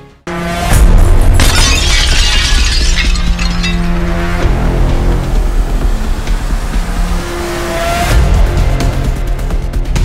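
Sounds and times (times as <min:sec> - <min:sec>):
glass shattering sound effect: 0:01.4 - 0:04.4.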